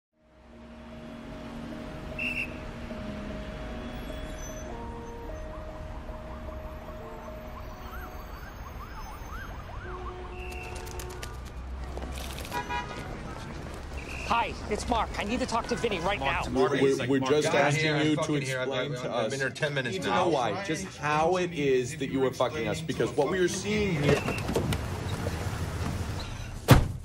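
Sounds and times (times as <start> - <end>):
traffic rumble: 0.2 - 19.0, 20.2 - 27.0
car horns: 2.1 - 5.6, 6.3 - 11.5, 12.4 - 16.4
siren wailing: 3.3 - 11.6.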